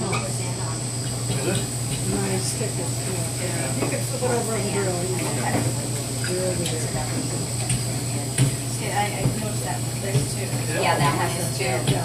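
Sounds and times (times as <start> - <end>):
people talking in a room: 0.0 - 12.0
steady low hum: 0.0 - 12.0.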